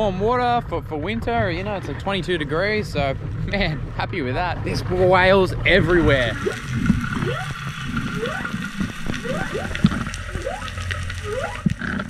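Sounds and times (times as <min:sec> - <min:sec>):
low underwater rumble: 0:00.0 - 0:12.0
whale song whoops: 0:06.4 - 0:11.8.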